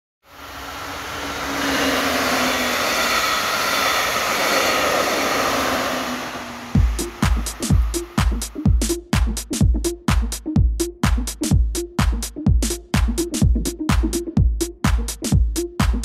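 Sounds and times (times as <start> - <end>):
passenger train passing: 0.3 - 8.6
electronic dance music: 5.6 - 16.0.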